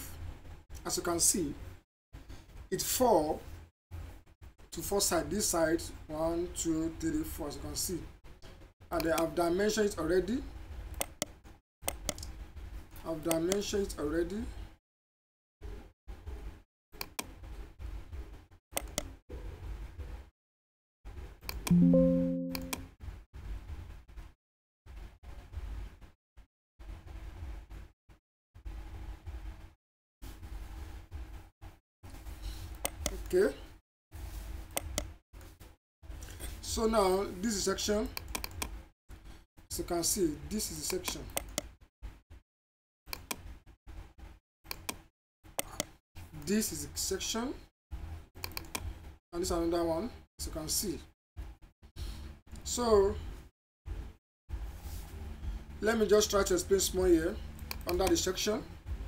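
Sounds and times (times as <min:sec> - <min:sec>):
computer mouse clicking: 0:11.0 - 0:12.3, 0:17.0 - 0:17.4, 0:18.8 - 0:19.1, 0:32.8 - 0:33.2, 0:34.8 - 0:35.2, 0:38.2 - 0:38.8, 0:40.9 - 0:41.7, 0:43.1 - 0:43.5, 0:44.7 - 0:46.0, 0:48.4 - 0:48.9, 0:57.6 - 0:58.2.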